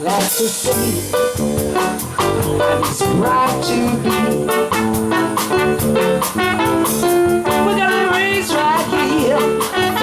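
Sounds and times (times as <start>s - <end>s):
drum kit beat: 0.0s - 10.0s
guitar: 0.0s - 10.0s
live band playing: 0.0s - 10.0s
trumpet line: 2.4s - 10.0s.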